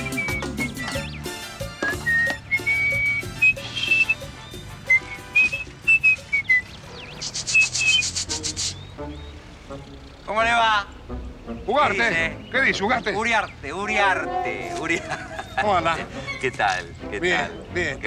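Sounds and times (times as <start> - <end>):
man whistling a tune: 0.0 - 6.8, 7.5 - 8.2
light background music: 0.0 - 18.0
man laughing: 14.2 - 16.8.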